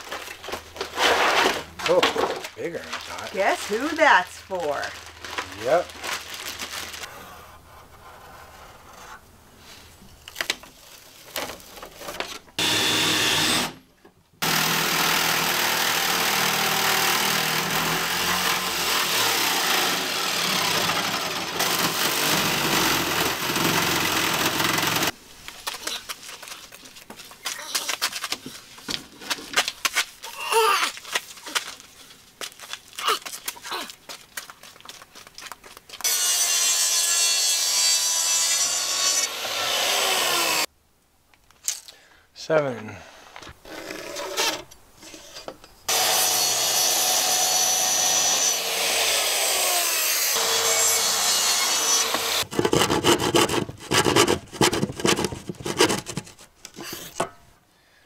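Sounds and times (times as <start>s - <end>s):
power saw cutting wood: 12.6s - 13.8s, 14.4s - 25.2s, 36.0s - 40.7s, 45.9s - 56.3s
boards knocking and scraping: 52.1s - 57.4s.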